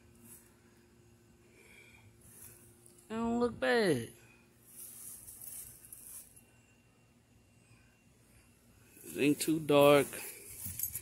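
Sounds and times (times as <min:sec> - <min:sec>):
soft high hiss: 0:00.0 - 0:11.0.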